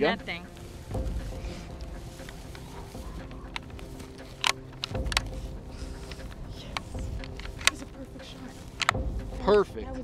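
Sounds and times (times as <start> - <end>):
rustling in dry grass: 0.0 - 9.7
rifle handling clicks: 3.5 - 5.4, 6.0 - 8.0, 8.7 - 9.1.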